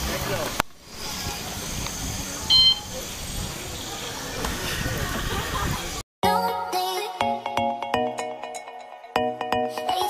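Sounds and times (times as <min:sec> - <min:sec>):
outdoor crowd ambience: 0:00.0 - 0:06.5
loud electronic beep: 0:02.5 - 0:02.9.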